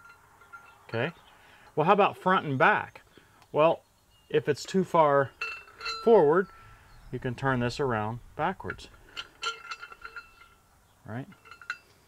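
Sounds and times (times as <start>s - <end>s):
metal parts clinking: 5.3s - 6.7s, 7.6s - 12.0s.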